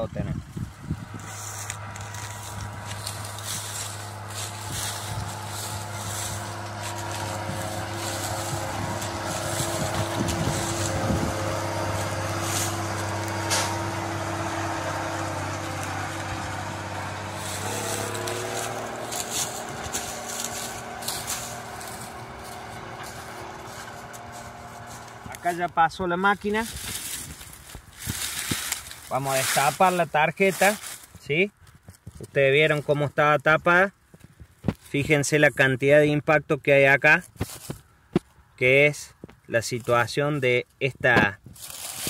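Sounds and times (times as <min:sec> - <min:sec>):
diesel engine of passing sprayer: 0:00.0 - 0:31.0.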